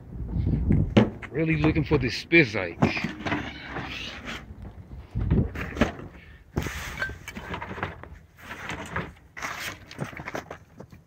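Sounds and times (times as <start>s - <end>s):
objects shifting in plastic bin: 5.2s - 10.9s.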